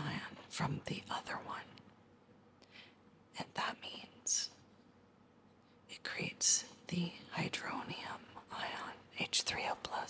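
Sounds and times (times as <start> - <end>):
woman whispering: 0.0 - 1.8, 3.4 - 4.6, 5.9 - 10.0.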